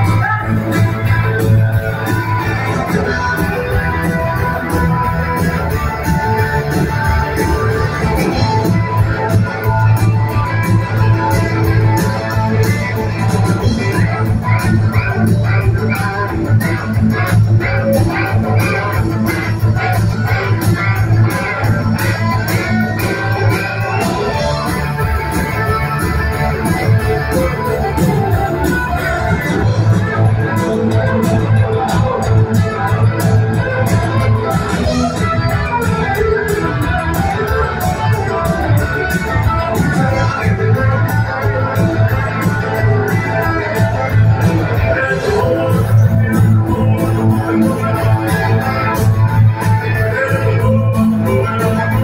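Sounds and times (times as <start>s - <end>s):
bass guitar: 0.0s - 52.0s
electric guitars: 0.0s - 52.0s
steady drumbeat: 0.0s - 52.0s.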